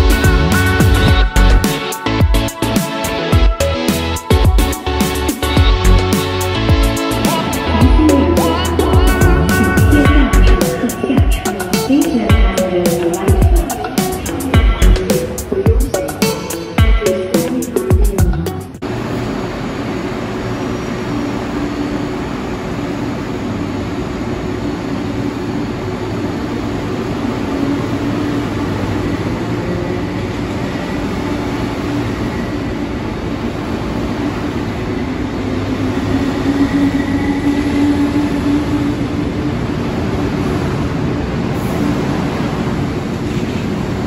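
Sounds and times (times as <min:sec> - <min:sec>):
electric train hum: 0:00.0 - 0:44.0.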